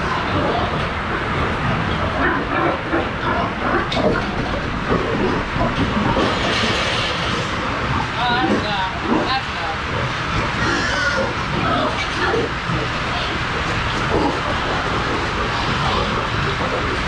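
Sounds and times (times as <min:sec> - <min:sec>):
noisy din: 0:00.0 - 0:17.0
pigs grunting and squealing: 0:00.0 - 0:17.0.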